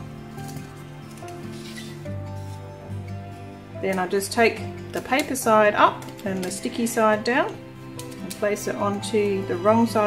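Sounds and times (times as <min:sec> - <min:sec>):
paper rustling: 0:00.0 - 0:02.9
soft background music: 0:00.0 - 0:10.0.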